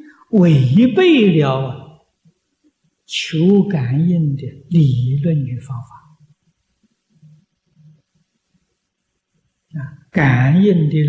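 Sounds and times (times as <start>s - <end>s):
man speaking: 0.0s - 1.9s, 3.1s - 6.1s, 9.8s - 11.0s.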